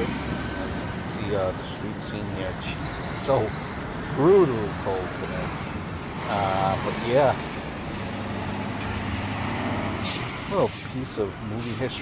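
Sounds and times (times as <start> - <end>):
traffic noise: 0.0 - 12.0
truck engine hum: 0.0 - 12.0.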